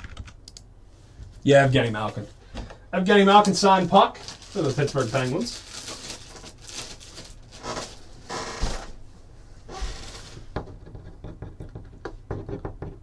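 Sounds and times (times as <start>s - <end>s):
light knocks and taps: 10.6s - 13.0s.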